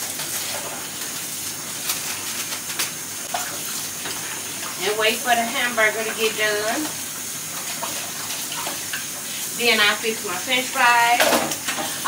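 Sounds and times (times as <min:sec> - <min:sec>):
bowl rinsed under water: 0:03.3 - 0:12.0.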